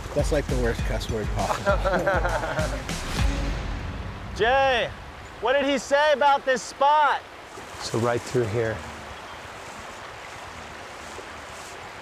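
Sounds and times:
flowing river water: 0.0 - 12.0.

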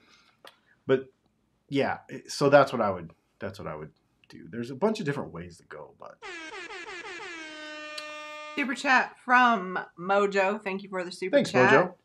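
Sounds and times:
brassy horn tone sliding down: 6.2 - 9.0.

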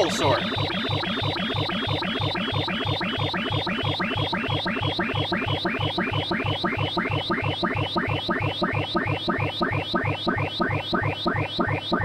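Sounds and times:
chirping electronic pitch sweeps: 0.0 - 4.4.

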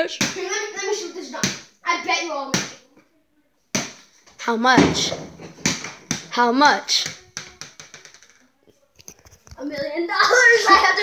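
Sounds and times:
ball bouncing on hardwood floor: 0.2 - 0.5, 1.4 - 1.7, 3.7 - 4.0, 4.6 - 8.4.

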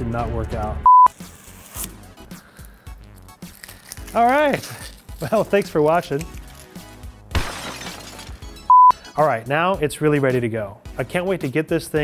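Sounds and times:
glass shattering: 7.3 - 9.2
short loud beep: 8.7 - 9.0.

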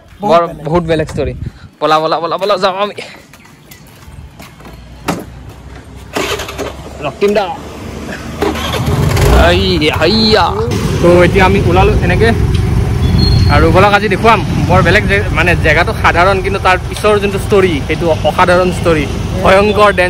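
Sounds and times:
road rumble: 0.0 - 20.0
motorcycle engine: 6.1 - 20.0.

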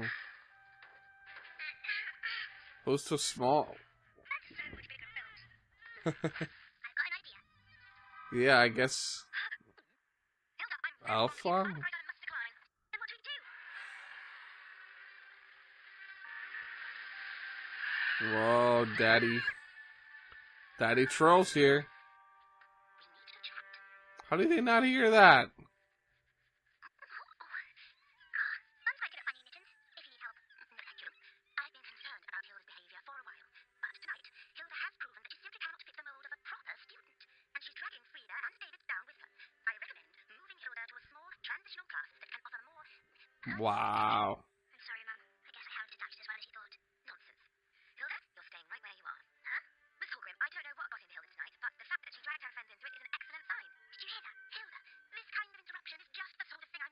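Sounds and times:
cartoon dialogue: 1.3 - 9.8, 10.6 - 13.8, 18.1 - 19.8, 20.8 - 22.0, 22.9 - 25.6, 26.8 - 56.9.

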